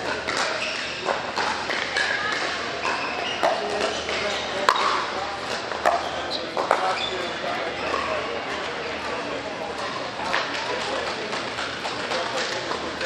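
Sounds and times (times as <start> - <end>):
voices in large indoor hall: 0.0 - 13.0.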